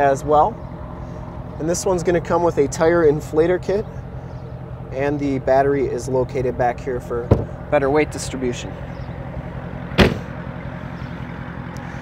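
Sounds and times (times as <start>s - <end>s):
low engine hum: 0.0s - 12.0s
car trunk lid slamming: 7.3s - 7.6s, 9.9s - 10.4s.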